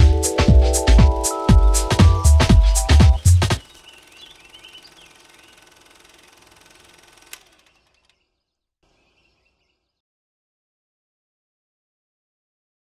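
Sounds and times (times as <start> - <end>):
faint bird chirps: 3.4 - 6.1, 7.4 - 10.0
sharp click: 7.2 - 8.2.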